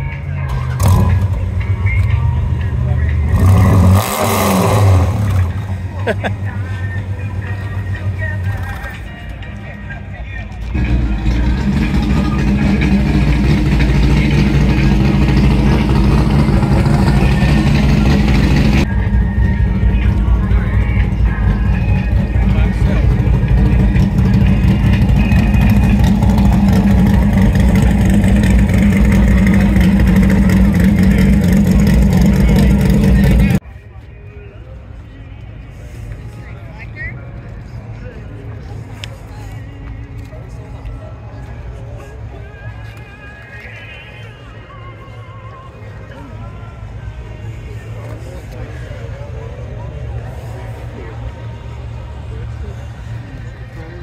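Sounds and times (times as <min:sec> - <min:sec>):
car engine idling: 0:00.0 - 0:33.6.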